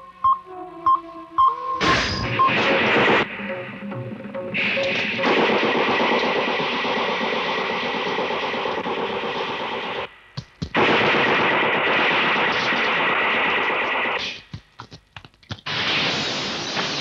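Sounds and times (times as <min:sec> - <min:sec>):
loud rushing hiss: 0:15.7 - 0:17.0.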